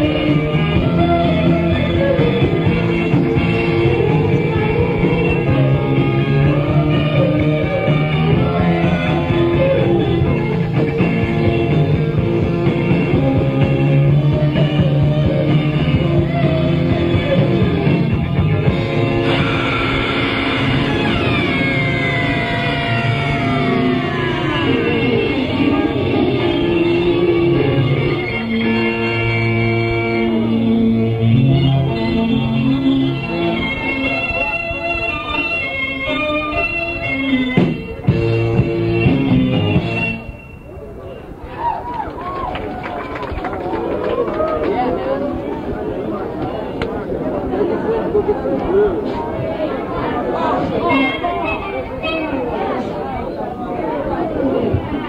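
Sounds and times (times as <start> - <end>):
punk band playing live: 0.0 - 27.8, 37.5 - 40.2
electric guitar: 0.0 - 40.2
bass guitar: 0.0 - 40.3.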